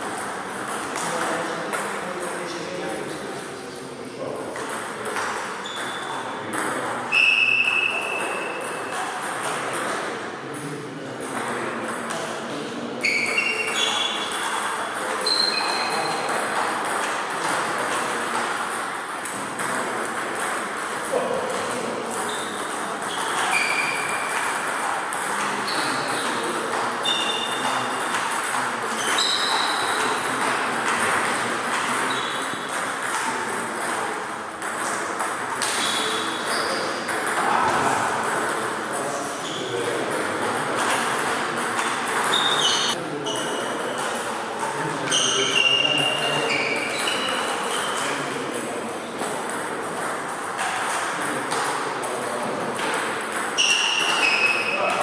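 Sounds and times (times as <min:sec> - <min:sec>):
table tennis balls pinging: 0:00.0 - 0:03.2, 0:04.3 - 0:55.0.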